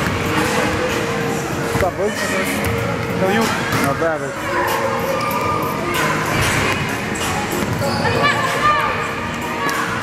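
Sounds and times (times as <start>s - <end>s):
voices in background: 0.2s - 10.0s.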